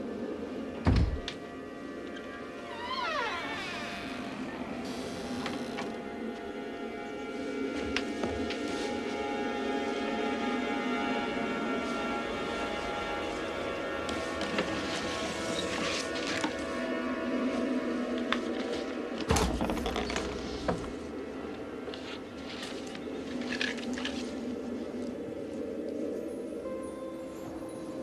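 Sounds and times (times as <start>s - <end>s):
tense film score: 0.0s - 28.0s.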